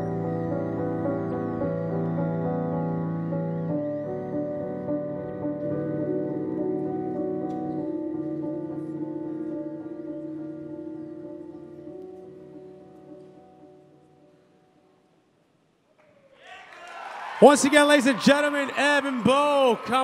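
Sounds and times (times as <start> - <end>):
soft music of held chords: 0.0 - 15.1.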